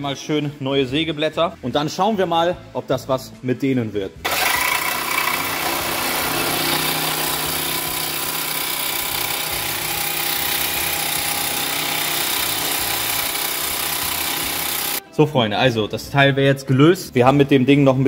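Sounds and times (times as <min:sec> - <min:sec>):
reciprocating saw cutting metal: 0:04.2 - 0:15.0.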